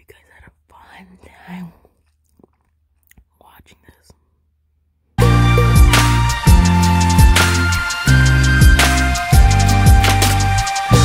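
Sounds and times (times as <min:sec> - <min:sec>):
close whispering: 0:00.0 - 0:02.0, 0:03.2 - 0:04.3.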